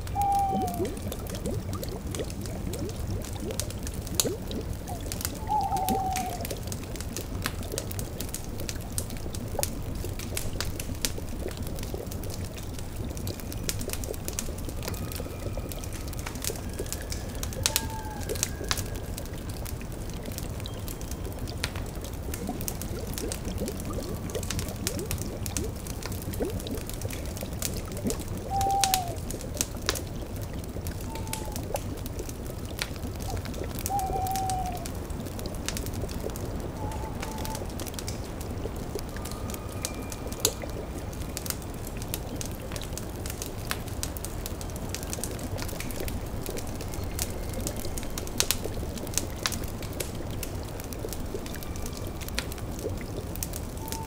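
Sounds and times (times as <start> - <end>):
owl hooting: 0.0 - 1.0, 5.4 - 6.5, 17.6 - 18.6, 28.5 - 29.2, 31.0 - 31.7, 33.9 - 34.9, 36.8 - 37.7, 53.8 - 54.0
cauldron bubbling: 0.0 - 54.0
crackling wood fire: 0.0 - 54.0.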